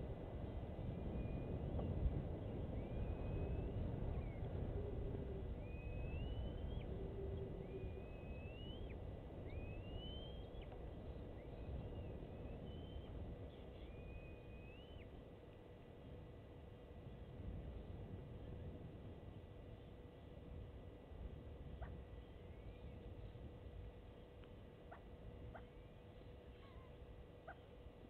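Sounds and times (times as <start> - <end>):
low outdoor rumble: 0.0 - 28.0
bird whistling call: 2.8 - 4.9, 5.6 - 10.8, 11.4 - 13.2, 13.8 - 15.1.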